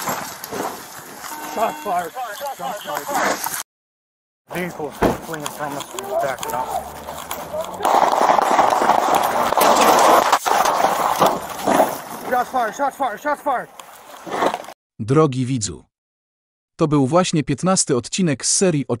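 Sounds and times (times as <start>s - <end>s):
people talking and shouting: 4.5s - 10.1s.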